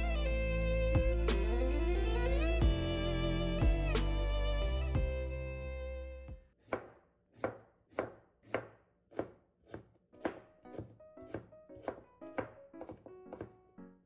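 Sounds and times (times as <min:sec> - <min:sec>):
music: 0:00.0 - 0:06.4, 0:10.4 - 0:14.0
knife chopping cucumber on board: 0:06.6 - 0:13.5.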